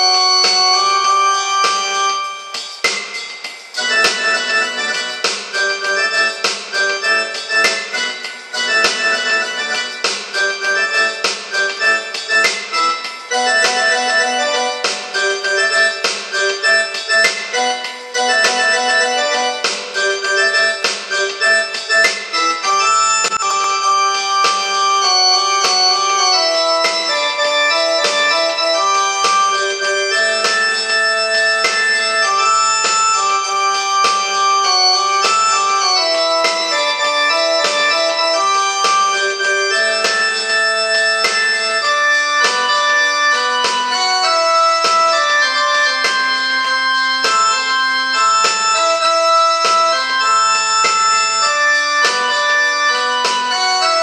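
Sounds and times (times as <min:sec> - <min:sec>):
electronic keyboard melody: 0:00.0 - 0:54.0.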